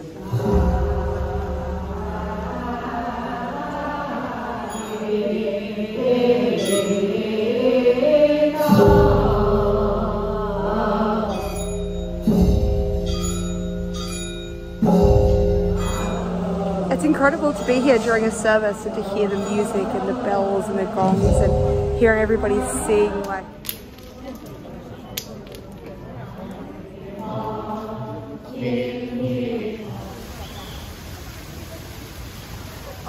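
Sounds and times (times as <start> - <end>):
congregation chanting: 0.0 - 12.4, 14.8 - 23.6, 26.1 - 31.0
small bells ringing: 4.7 - 5.4, 6.5 - 7.5, 11.3 - 18.2
big gong ringing: 11.3 - 19.6, 21.1 - 23.0.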